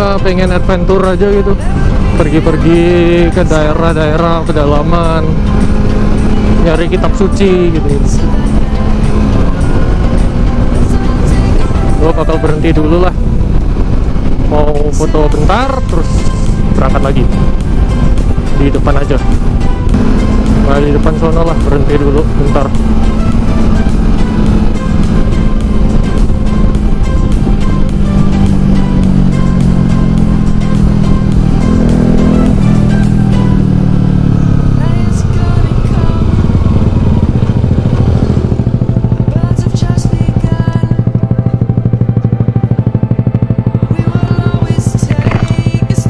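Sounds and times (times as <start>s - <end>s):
motorcycle engine: 0.0s - 46.0s.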